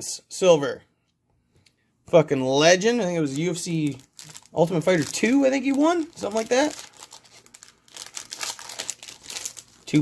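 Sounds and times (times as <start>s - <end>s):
foil wrapper crinkling: 3.3s - 10.0s.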